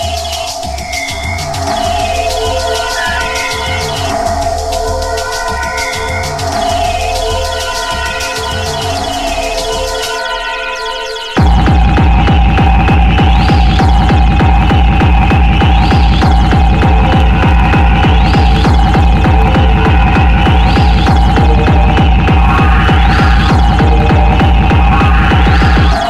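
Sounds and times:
fast kick-drum pattern: 0.0 - 10.4, 11.3 - 26.0
heavy bass: 0.0 - 26.0
high synth passage: 0.0 - 26.0
rising synth sweep: 0.0 - 26.0
held synth tone: 1.8 - 26.0.

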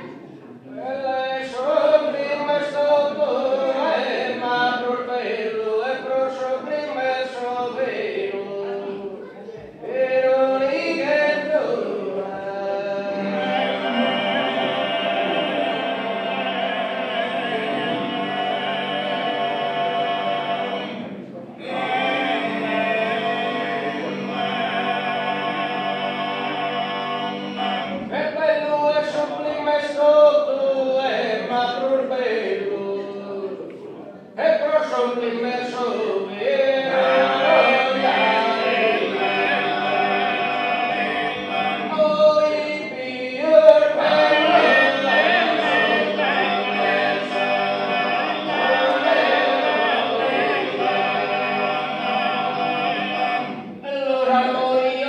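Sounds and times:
men singing close harmony: 9.8 - 33.5, 34.4 - 55.0.

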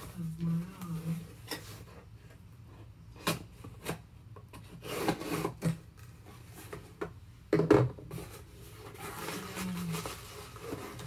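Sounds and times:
packaging rustling: 8.2 - 11.0
packaging scraping: 8.2 - 11.0.

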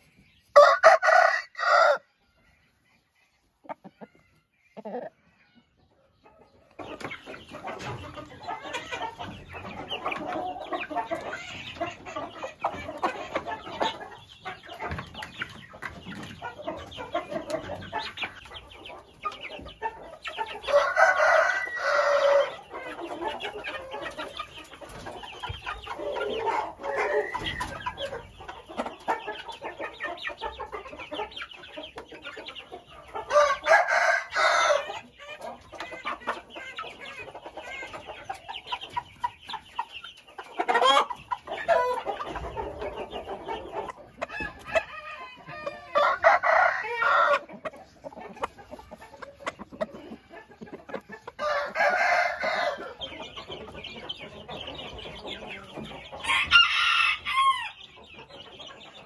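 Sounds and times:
chickens clucking: 0.0 - 59.0
chicks peeping: 0.0 - 59.0
rooster crowing: 0.6 - 2.1, 20.7 - 22.6, 33.3 - 34.9, 44.3 - 47.5, 51.4 - 53.0, 56.2 - 57.7.

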